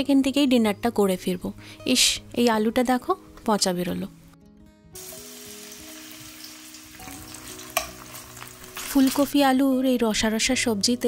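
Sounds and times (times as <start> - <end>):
potato sizzling in hot oil: 5.0 - 9.4.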